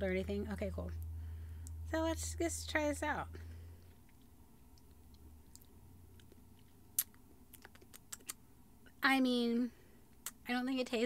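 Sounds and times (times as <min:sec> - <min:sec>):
lip smacks and mouth clicks: 0:03.8 - 0:08.5, 0:10.1 - 0:10.4.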